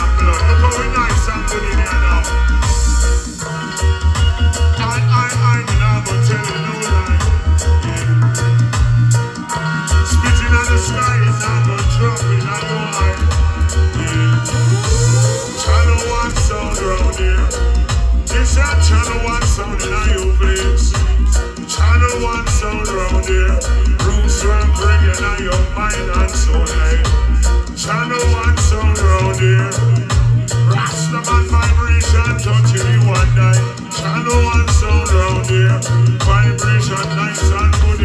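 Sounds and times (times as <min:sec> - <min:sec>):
deep bass line: 0:00.0 - 0:38.0
person singing: 0:00.0 - 0:38.0
reggae music through sound system: 0:00.0 - 0:38.0.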